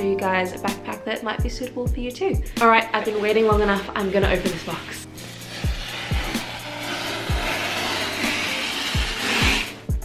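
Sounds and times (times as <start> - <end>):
blade slitting packing tape: 5.2 - 9.8.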